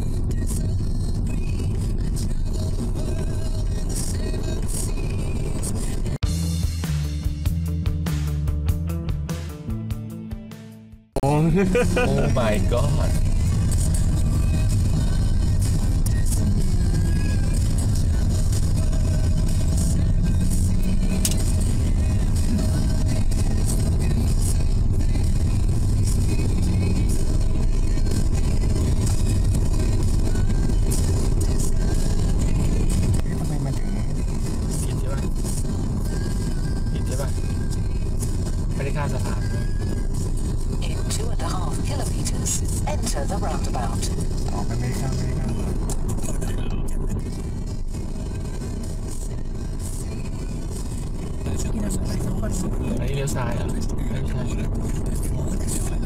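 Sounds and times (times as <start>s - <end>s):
road and tyre rumble in car: 0.0s - 6.4s, 11.2s - 56.0s.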